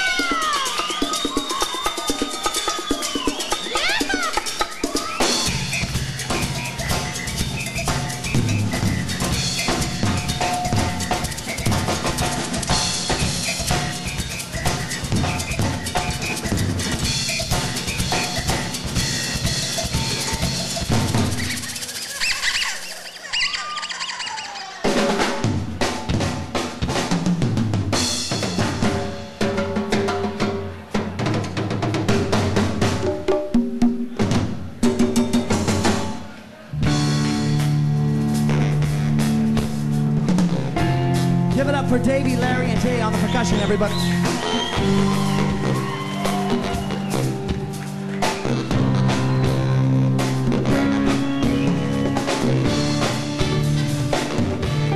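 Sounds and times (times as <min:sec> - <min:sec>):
drum kit and percussion playing: 0:00.0 - 0:54.9.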